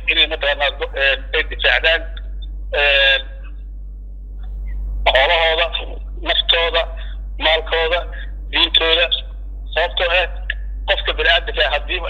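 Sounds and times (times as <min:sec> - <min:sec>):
man speaking: 0:00.0 - 0:03.5, 0:05.1 - 0:12.0
steady low hum: 0:00.0 - 0:12.0.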